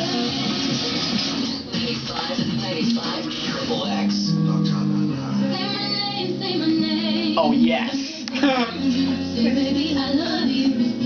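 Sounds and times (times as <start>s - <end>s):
man singing: 2.2s - 6.0s, 7.2s - 9.7s.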